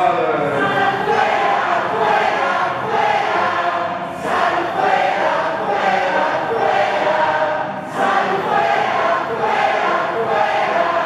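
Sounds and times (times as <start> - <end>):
congregation singing in unison: 0.0 - 11.0.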